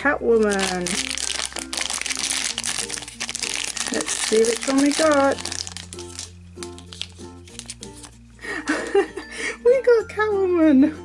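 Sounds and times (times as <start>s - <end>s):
background music: 0.0s - 11.0s
foil packet crinkling: 0.4s - 8.2s.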